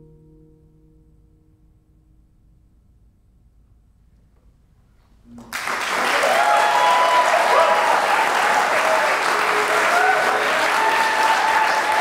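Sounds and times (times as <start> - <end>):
classical guitar chord ringing: 0.0 - 3.4.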